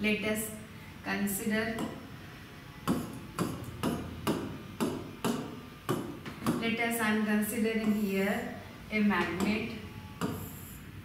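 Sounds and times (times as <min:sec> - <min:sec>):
sharp knocks: 0:02.9 - 0:06.7.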